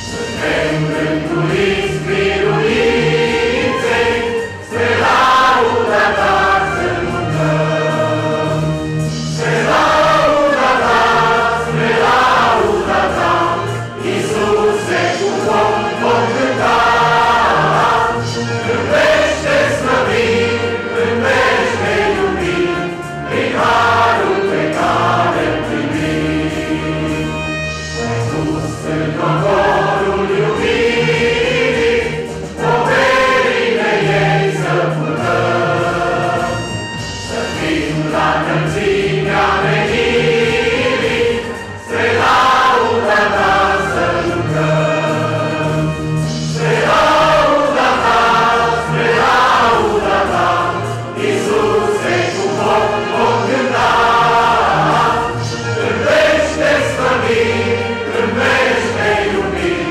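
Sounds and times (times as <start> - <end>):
mixed choir singing a hymn: 0.0 - 59.9.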